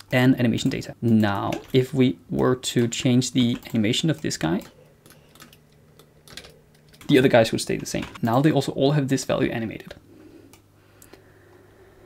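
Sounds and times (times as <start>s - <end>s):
faint steady low hum: 0.0s - 12.0s
computer keyboard keystrokes: 3.4s - 7.2s.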